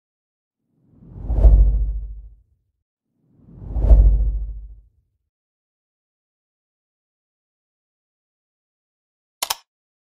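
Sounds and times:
deep whoosh with low rumble: 0:00.9 - 0:02.4, 0:03.4 - 0:04.9.

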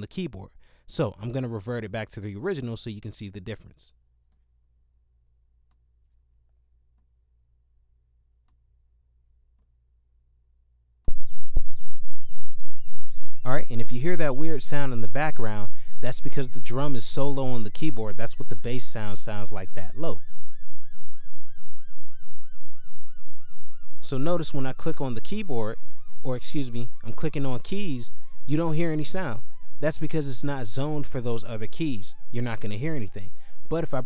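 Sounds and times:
low pulsing bass drum wobble: 0:11.1 - 0:33.9.

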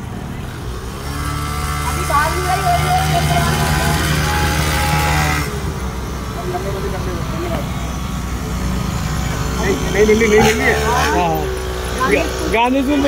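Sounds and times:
traffic noise rushing: 0:00.0 - 0:13.0
vehicle engine running: 0:00.0 - 0:13.0
faint voices: 0:01.8 - 0:13.0.

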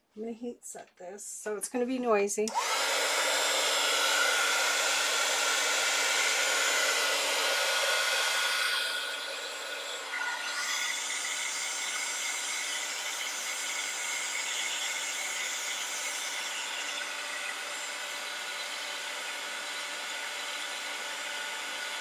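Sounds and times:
heat tool blowing hot air: 0:02.5 - 0:22.0.

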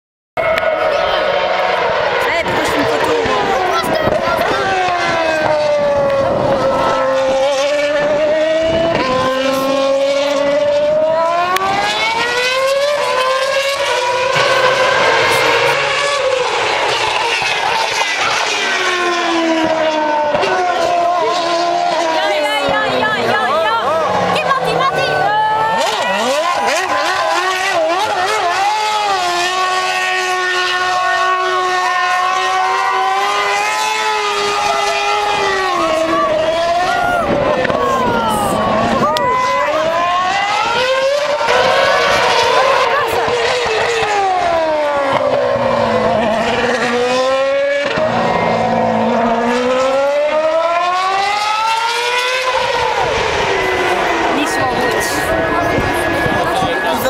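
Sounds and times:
racing car engine at high revs: 0:00.4 - 0:57.0.

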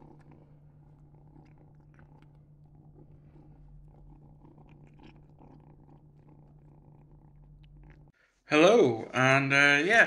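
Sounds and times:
chewing clicks: 0:00.0 - 0:08.1
kitten purring: 0:00.0 - 0:08.2.

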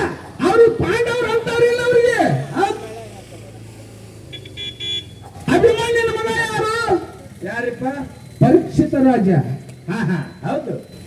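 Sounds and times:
horn beeps: 0:04.2 - 0:05.9, 0:09.6 - 0:11.0.

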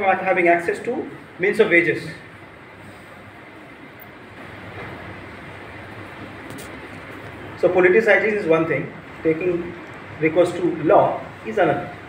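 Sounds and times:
low room rumble and hiss: 0:00.0 - 0:12.0.

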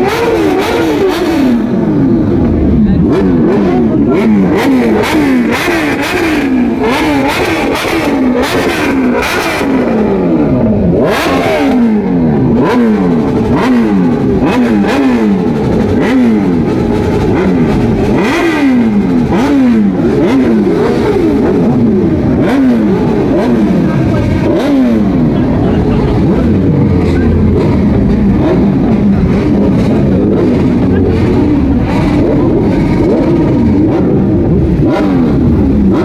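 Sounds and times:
motorcycle engines revving: 0:00.0 - 0:36.0.

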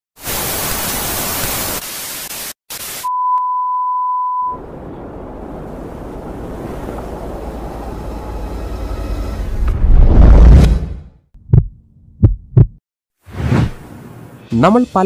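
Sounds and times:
tv static hiss: 0:00.2 - 0:03.1.

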